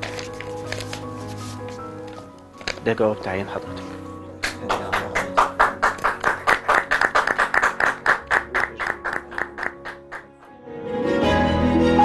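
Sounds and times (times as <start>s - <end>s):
background music: 0.0s - 12.0s
hands clapping rhythmically: 4.4s - 10.5s.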